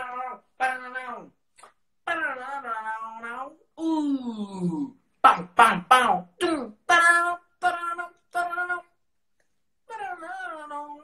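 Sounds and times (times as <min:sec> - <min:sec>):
young man singing syllables: 0:02.0 - 0:09.0, 0:09.8 - 0:11.0.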